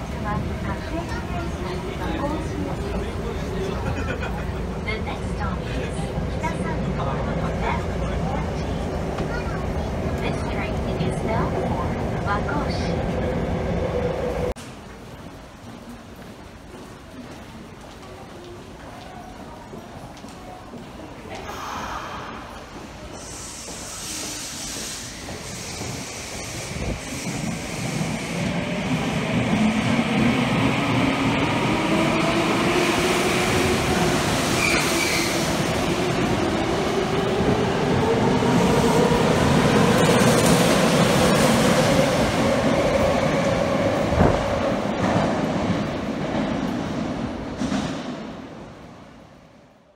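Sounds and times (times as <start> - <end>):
train wheels rumbling: 20.8 - 49.1.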